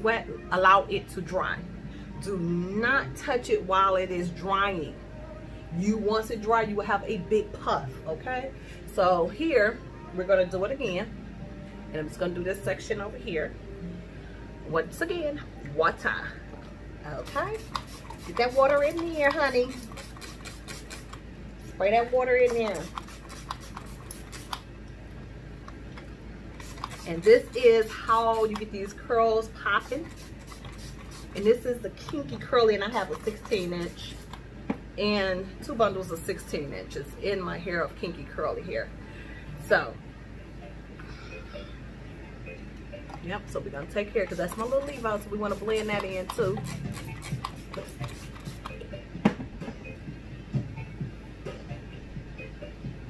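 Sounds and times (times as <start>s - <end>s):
fingers rustling wet hair: 17.2s - 21.2s, 22.3s - 24.6s, 26.6s - 28.9s, 29.8s - 34.4s, 44.2s - 48.8s
spray bottle spritzes: 17.5s - 21.2s, 22.5s - 24.6s, 26.6s - 27.4s, 29.9s - 31.5s, 44.3s - 48.7s.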